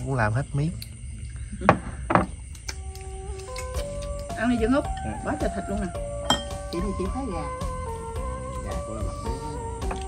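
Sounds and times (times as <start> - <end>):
faint background music: 2.5 - 10.0.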